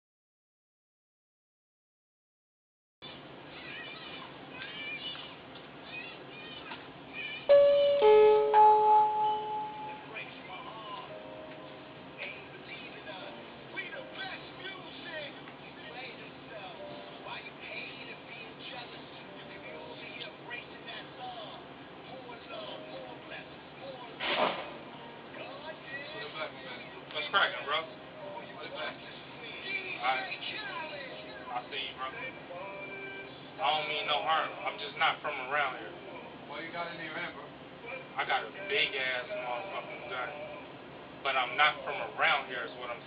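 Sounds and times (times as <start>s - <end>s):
muffled voices: 3.0s - 8.7s, 9.4s - 43.0s
electronic door entry chime: 7.5s - 10.1s.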